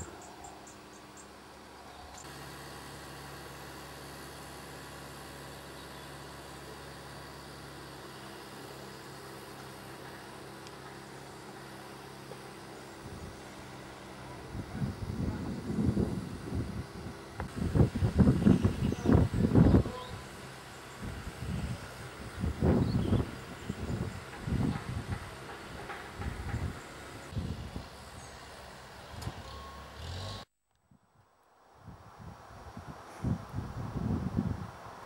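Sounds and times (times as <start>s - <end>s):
engine humming: 0.0s - 30.5s
wind buffeting microphone: 14.4s - 20.2s, 21.0s - 28.3s, 31.8s - 35.0s.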